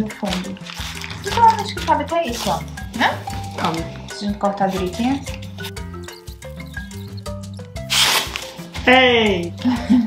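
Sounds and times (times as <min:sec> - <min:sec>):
paper crinkling: 0:00.0 - 0:02.7, 0:07.9 - 0:08.7
scissors cutting wrapping paper: 0:00.0 - 0:03.8, 0:07.8 - 0:08.7
background music: 0:00.0 - 0:10.0.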